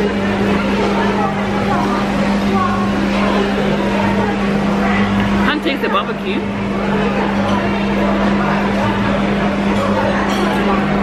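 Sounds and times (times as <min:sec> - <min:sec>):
background chatter: 0:00.0 - 0:11.0.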